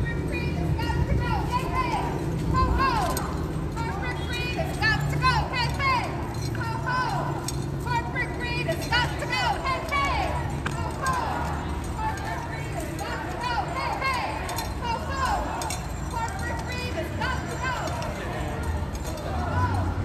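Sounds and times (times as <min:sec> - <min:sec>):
indistinct voices: 0:00.0 - 0:20.0
low hum of street noise: 0:00.0 - 0:20.0.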